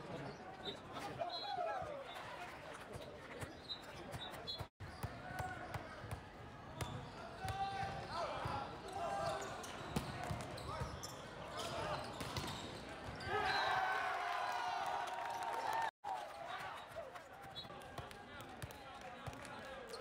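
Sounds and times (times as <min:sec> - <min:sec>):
players shouting calls: 0:13.2 - 0:15.8.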